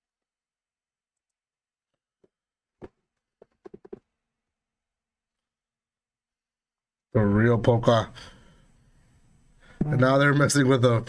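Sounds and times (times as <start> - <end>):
man speaking: 9.8 - 11.0.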